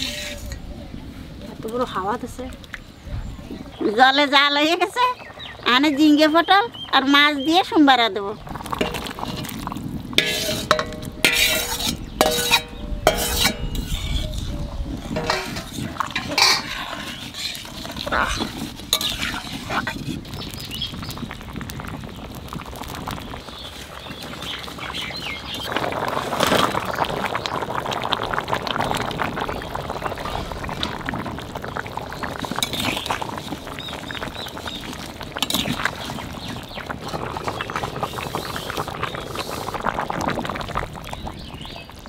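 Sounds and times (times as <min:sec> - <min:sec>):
stirring and sloshing liquid: 0:08.4 - 0:20.3, 0:25.6 - 0:41.2.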